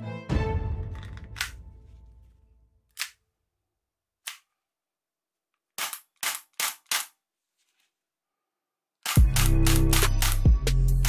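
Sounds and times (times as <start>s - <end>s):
magazine snapping into toy pistol: 3.0s - 3.2s, 5.8s - 7.2s
toy pistol plastic clicks: 5.8s - 7.2s, 9.0s - 10.4s.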